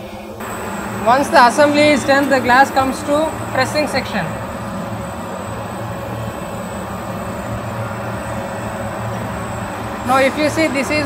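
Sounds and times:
machine noise with low hum: 0.0 - 11.0.

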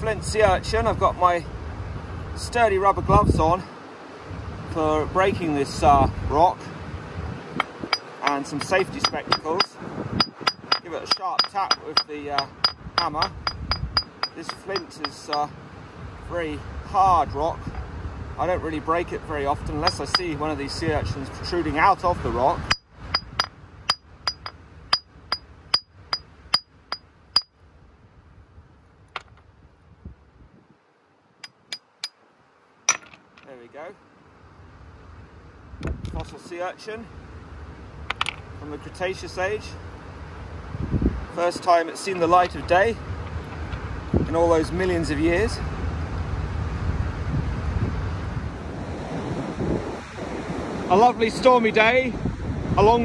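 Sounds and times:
wind blowing across microphone: 0.0 - 27.0, 27.8 - 30.9, 35.0 - 53.0
hammer striking flint: 7.6 - 15.5, 19.8 - 20.4, 22.6 - 27.5, 29.1 - 29.5, 31.4 - 32.2, 32.9 - 33.5, 38.1 - 38.5.

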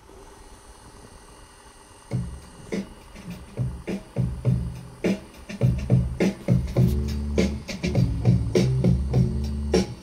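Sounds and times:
faint hum tones: 0.0 - 10.0
tape hiss: 0.0 - 10.0.

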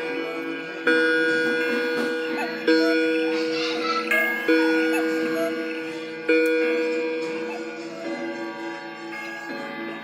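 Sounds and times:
clocks ticking: 0.0 - 10.0
deep clock bell strike: 0.0 - 10.0
higher clock chimes: 0.0 - 10.0.

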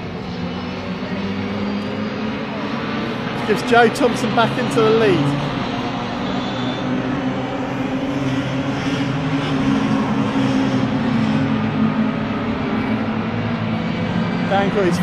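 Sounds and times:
racing cars passing: 0.0 - 15.0.

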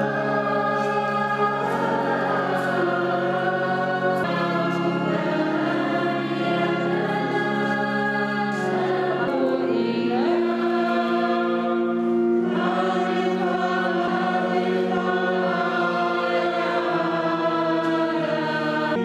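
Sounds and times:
church choir singing a hymn: 0.0 - 19.0.

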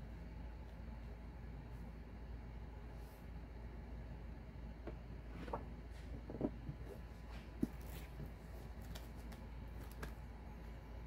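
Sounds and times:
low steady hum: 0.0 - 11.0
plastic rustling: 7.2 - 10.3.

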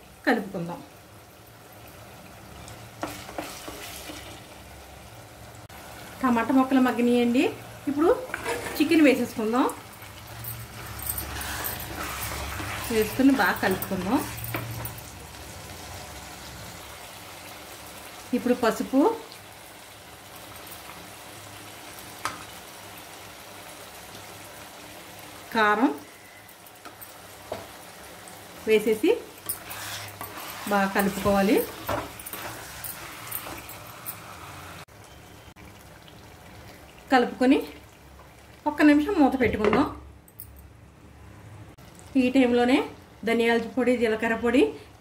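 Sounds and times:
frying sizzle: 0.0 - 40.0, 41.7 - 45.0
wooden spatula scraping pot: 3.0 - 4.4, 8.1 - 9.4, 10.2 - 15.0, 29.4 - 34.8.

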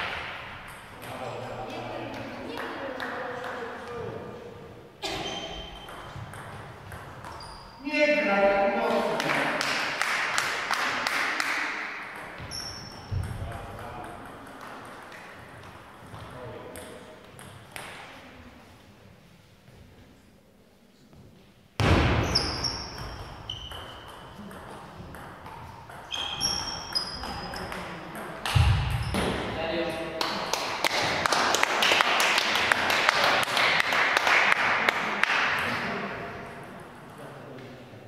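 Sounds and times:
voices in a hall: 0.0 - 21.8, 22.4 - 38.0
shoes squeaking on floor: 5.0 - 6.4, 7.1 - 7.8, 12.3 - 13.4, 22.2 - 24.4, 25.9 - 28.1.

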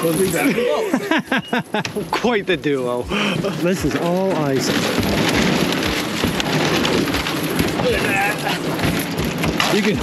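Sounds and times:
boat crunching through ice: 2.1 - 10.0.

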